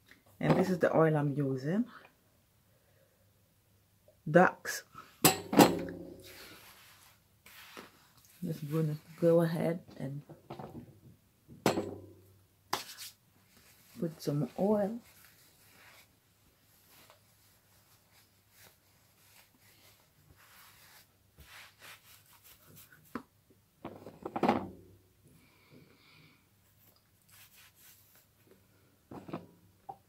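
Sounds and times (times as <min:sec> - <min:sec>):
fingers rubbing hair: 0:16.7 - 0:23.2, 0:26.9 - 0:28.3.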